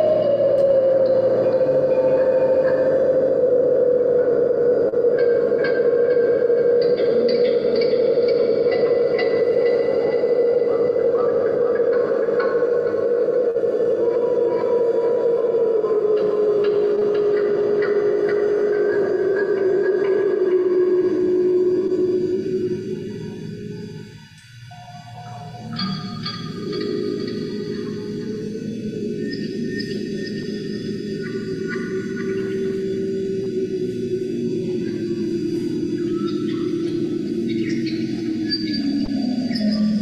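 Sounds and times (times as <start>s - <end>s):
sinking low drone tone: 0.0s - 40.0s.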